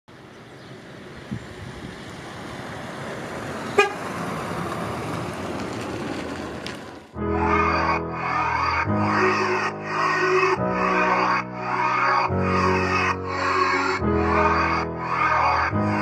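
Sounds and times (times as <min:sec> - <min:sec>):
car driving up: 0:00.4 - 0:10.0
car horn toot: 0:03.8 - 0:04.0
music: 0:07.2 - 0:16.0.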